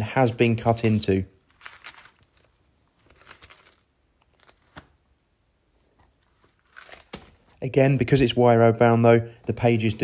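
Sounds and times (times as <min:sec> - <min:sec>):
paper rustling: 0:00.0 - 0:07.6.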